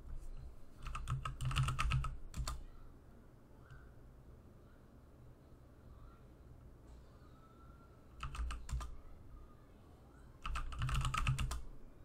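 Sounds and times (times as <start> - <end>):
keyboard typing: 0.2 - 2.6, 8.2 - 9.0, 10.4 - 11.7.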